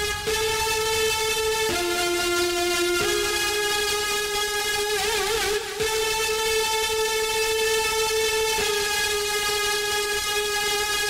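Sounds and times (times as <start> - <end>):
sustained synthesizer note: 0.0 - 10.9.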